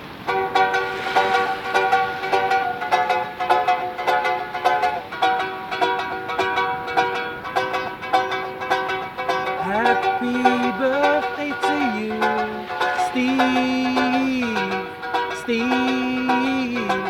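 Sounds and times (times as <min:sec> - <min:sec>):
small plucked string instrument strummed: 0:00.2 - 0:17.0.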